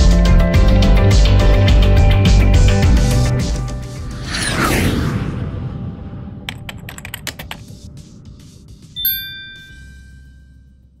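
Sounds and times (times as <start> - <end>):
bell-like ding: 9.0 - 10.9.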